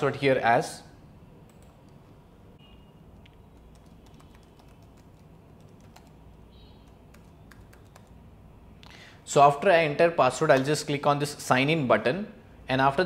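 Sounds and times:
computer keyboard keystrokes: 3.2s - 6.2s, 6.8s - 8.2s.

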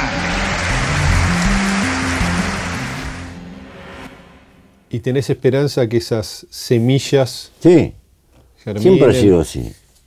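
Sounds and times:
crowd applauding: 0.0s - 3.4s
background music with low notes: 0.0s - 5.8s.

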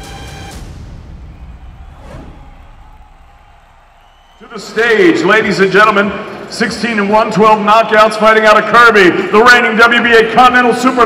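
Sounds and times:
whoosh sweep: 1.8s - 3.1s.

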